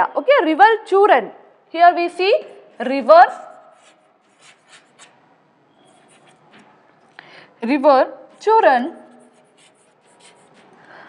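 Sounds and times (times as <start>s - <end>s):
chalk scratching on chalkboard: 2.8s - 6.8s, 8.3s - 11.0s.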